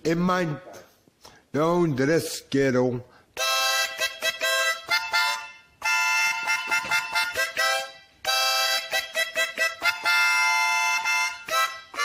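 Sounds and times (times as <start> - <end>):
free-reed instrument chords: 3.4 - 12.0.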